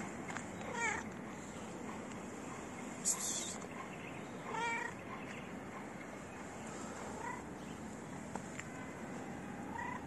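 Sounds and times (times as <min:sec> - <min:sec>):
cat meowing: 0:00.6 - 0:01.0, 0:04.5 - 0:05.0.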